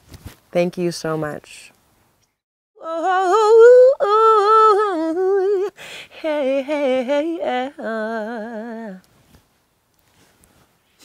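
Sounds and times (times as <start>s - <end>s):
woman singing wordless melody: 2.8s - 9.2s
singer breathing in: 5.8s - 6.1s.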